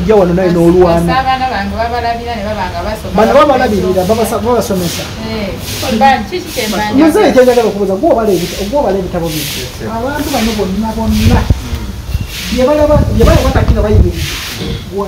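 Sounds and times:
low rumbles on microphone: 0:11.0 - 0:14.9.

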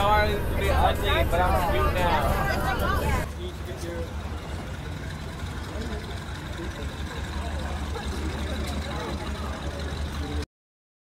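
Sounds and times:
faint voices: 0:00.0 - 0:10.4
vehicle engine idling: 0:00.0 - 0:10.5.

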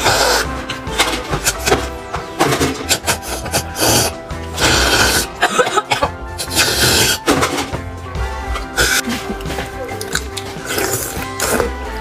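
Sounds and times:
slurping bone marrow: 0:00.0 - 0:00.7, 0:02.8 - 0:05.4, 0:06.4 - 0:07.3, 0:08.7 - 0:09.2, 0:09.9 - 0:11.8
background music: 0:00.0 - 0:12.0.

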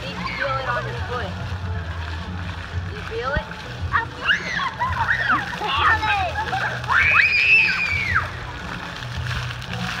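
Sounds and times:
fountain jets splattering on paving: 0:00.0 - 0:10.0
music playing: 0:00.0 - 0:10.0
child squealing: 0:04.2 - 0:05.4.

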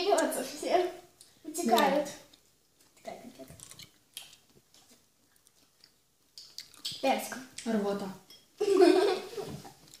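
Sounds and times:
chewing mouth clicks: 0:02.3 - 0:07.7.

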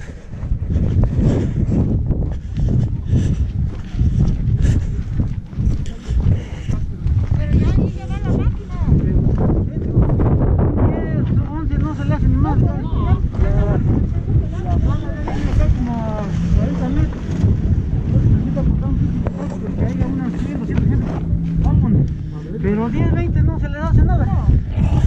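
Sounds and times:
steady low hum: 0:00.0 - 0:25.0
wind buffeting microphone: 0:00.0 - 0:25.0
people talking: 0:07.3 - 0:25.0.

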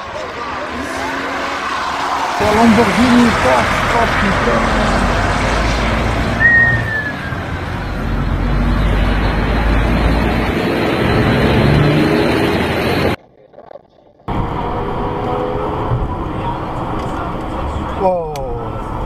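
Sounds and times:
voices: 0:00.0 - 0:10.5
car noise: 0:00.0 - 0:13.2, 0:14.3 - 0:19.0
falling whistle-like tone: 0:06.4 - 0:07.5.

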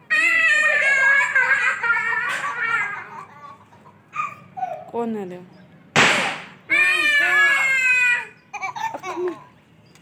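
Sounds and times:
young voice shrieking: 0:06.6 - 0:08.4.

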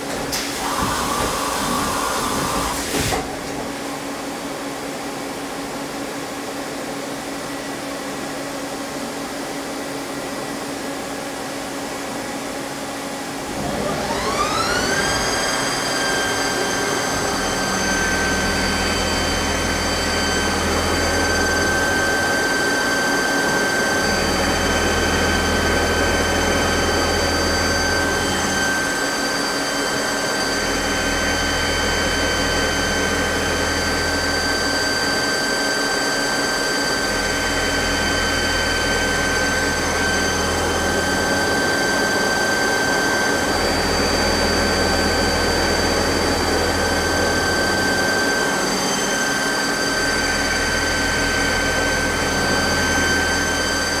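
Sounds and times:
lathe milling whine: 0:00.0 - 0:05.4, 0:06.6 - 0:54.0.

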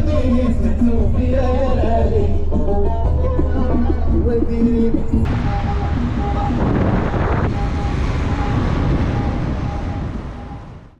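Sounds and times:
tyre and road noise: 0:05.3 - 0:10.9
wind buffeting camera: 0:05.3 - 0:10.9.

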